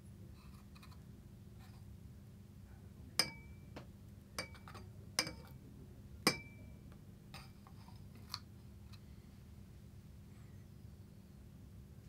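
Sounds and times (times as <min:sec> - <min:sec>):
glass beaker clinking: 0:03.2 - 0:03.6, 0:06.3 - 0:06.6.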